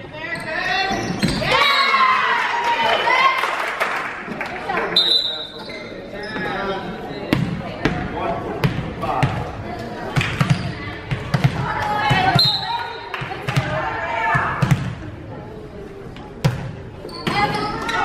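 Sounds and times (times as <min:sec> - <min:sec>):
people talking and calling out: 0:00.0 - 0:18.0
volleyball bouncing on wooden floor: 0:14.4 - 0:15.0.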